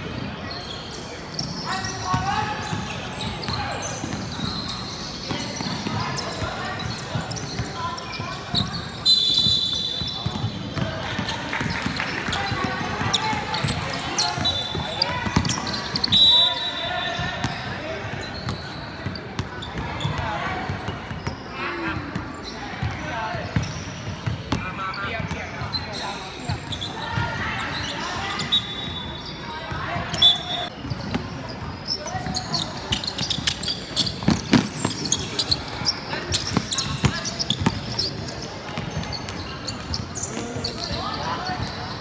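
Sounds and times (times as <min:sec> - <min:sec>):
sneaker squeaks: 0:00.0 - 0:42.0
voices in echoing gym: 0:00.0 - 0:42.0
basketball bouncing: 0:36.2 - 0:38.0.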